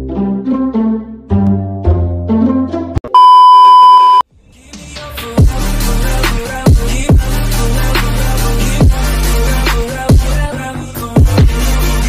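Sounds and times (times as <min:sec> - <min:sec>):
music: 0:00.0 - 0:03.1, 0:04.3 - 0:12.0
loud electronic beep tone: 0:03.2 - 0:04.2.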